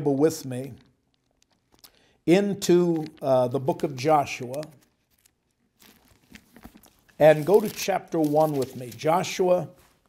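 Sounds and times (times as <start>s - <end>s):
thin pages being turned: 2.7s - 10.0s.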